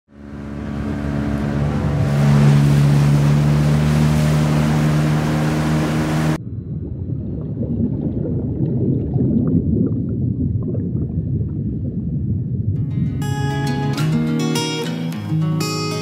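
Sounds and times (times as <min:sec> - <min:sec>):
motorboat engine running: 0:00.1 - 0:06.5
rushing water: 0:00.2 - 0:06.4
wind on microphone: 0:01.2 - 0:13.3
muffled low rumble: 0:06.4 - 0:13.2.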